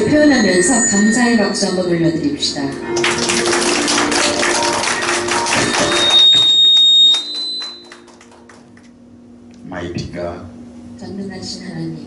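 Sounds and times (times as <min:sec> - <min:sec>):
held musical note: 0:00.0 - 0:08.5
congregation applauding: 0:02.8 - 0:08.9.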